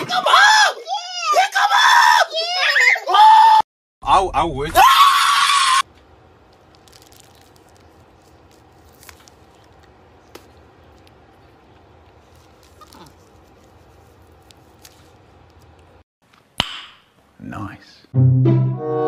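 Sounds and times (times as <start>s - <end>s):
faint room hum: 4.0s - 18.1s
person screaming: 4.7s - 5.8s.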